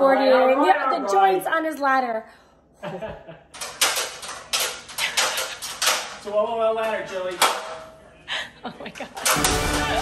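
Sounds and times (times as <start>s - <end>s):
metal stepladder clattering: 3.6s - 7.9s.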